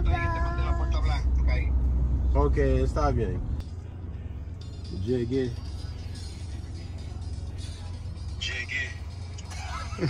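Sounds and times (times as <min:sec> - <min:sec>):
car driving rumble inside cabin: 0:00.0 - 0:10.0.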